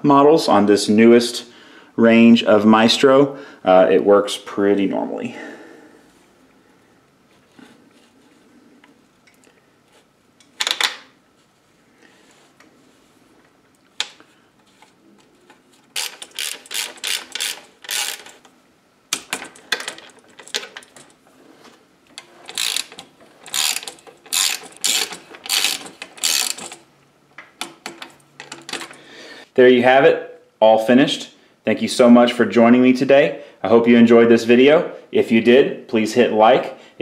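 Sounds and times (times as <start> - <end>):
ratchet wrench clicking: 16.0 - 18.4, 22.2 - 26.8.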